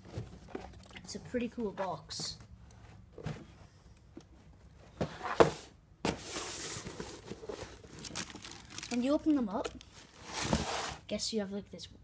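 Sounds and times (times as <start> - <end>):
tissue paper rustling: 6.3 - 9.2.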